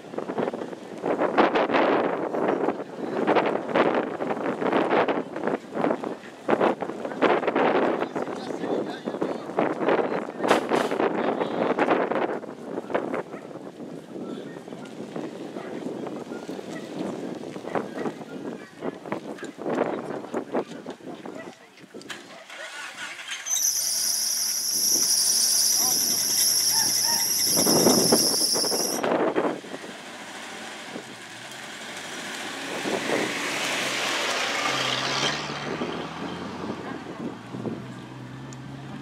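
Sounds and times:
voices: 12.6 - 29.3
shrill squeal: 23.3 - 29.0
rushing noise: 23.7 - 29.4.

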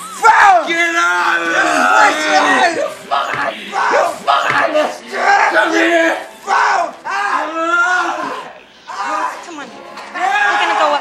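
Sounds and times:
men yelling and grunting: 0.0 - 11.0.

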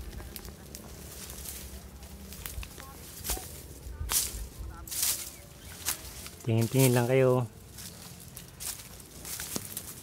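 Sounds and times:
vegetation swishing and rustling: 0.0 - 10.0.

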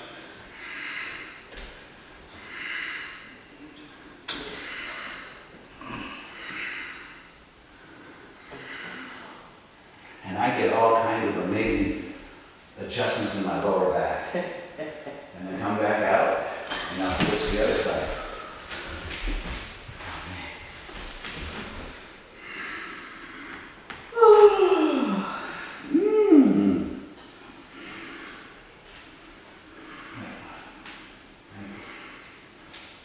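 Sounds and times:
person groaning: 24.1 - 27.1.

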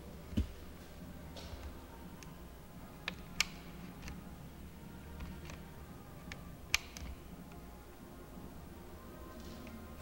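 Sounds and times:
faint low hum: 0.0 - 10.0
sharp clicks: 6.3 - 7.2.

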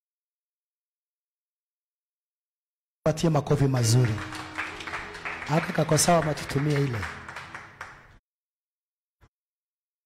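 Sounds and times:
congregation clapping: 3.5 - 8.2.

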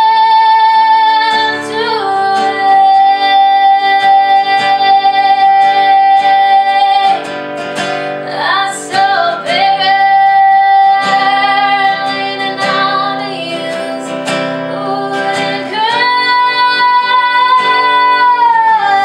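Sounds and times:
acoustic guitar strumming: 0.0 - 19.0
woman singing: 0.0 - 19.0.

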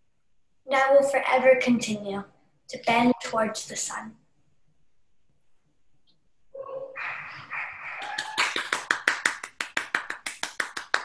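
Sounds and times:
person clapping hands: 8.0 - 11.0.

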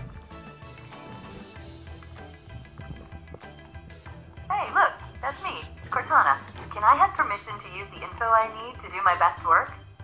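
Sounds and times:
soft background music: 0.0 - 10.0
synthetic female voice speaking: 4.5 - 9.8.

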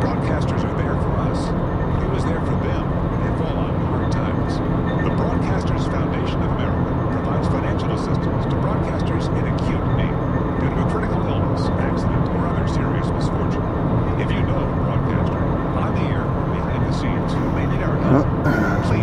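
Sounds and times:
faint radio voice talking: 0.0 - 19.0
car road and engine noise: 13.6 - 16.6.

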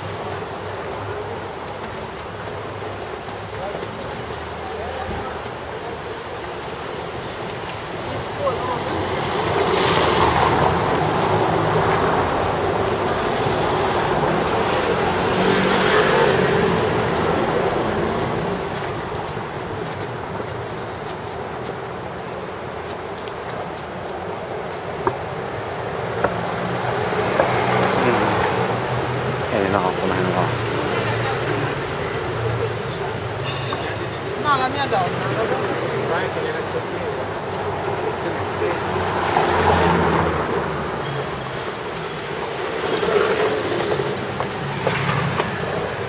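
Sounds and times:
city street traffic rumble: 0.0 - 46.0
car passing close: 37.9 - 45.9.

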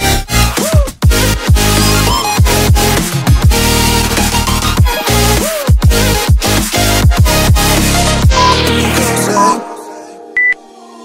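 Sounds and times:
electronic dance music: 0.0 - 11.0
high electronic beep: 8.3 - 9.7, 10.4 - 10.6.

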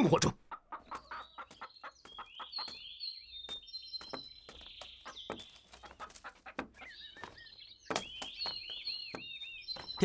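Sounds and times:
birds chirping: 0.0 - 10.0
chickens clucking: 0.0 - 10.0.

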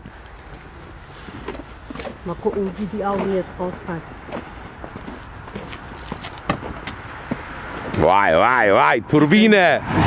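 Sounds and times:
footsteps on concrete: 0.0 - 8.0.

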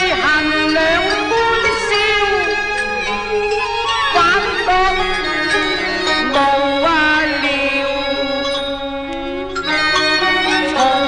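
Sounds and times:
opera singing with accompaniment: 0.0 - 11.0.

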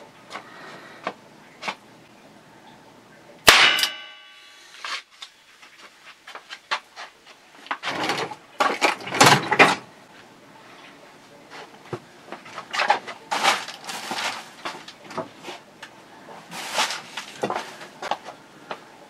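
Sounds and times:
loud ringing clang: 3.4 - 4.7
rustling handling sounds: 10.1 - 18.9.

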